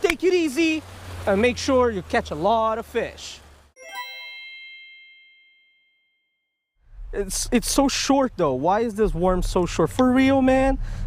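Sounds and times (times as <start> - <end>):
bell-like chime ringing: 3.8 - 6.6.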